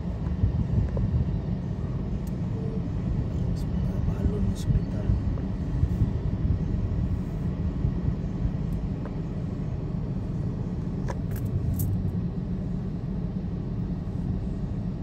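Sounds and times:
car driving rumble: 0:00.0 - 0:15.0.

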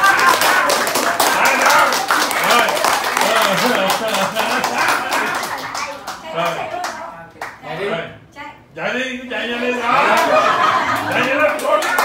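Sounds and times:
group clapping hands: 0:00.0 - 0:07.6, 0:10.0 - 0:12.0.

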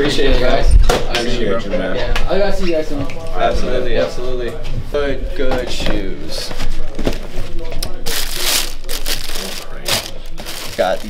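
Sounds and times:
plastic wrapping crinkling: 0:08.0 - 0:11.0.

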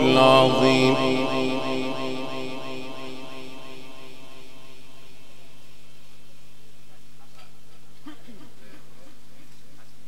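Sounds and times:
man chanting recitation: 0:00.0 - 0:04.6
loudspeaker electrical hum: 0:00.0 - 0:06.7.

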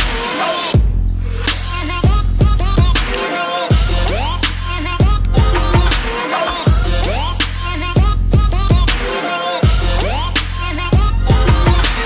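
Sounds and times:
hip-hop electronic music with heavy beat: 0:00.0 - 0:12.0.

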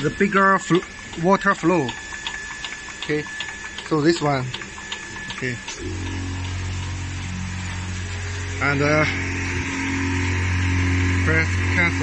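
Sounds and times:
pump motor humming: 0:00.0 - 0:12.0.

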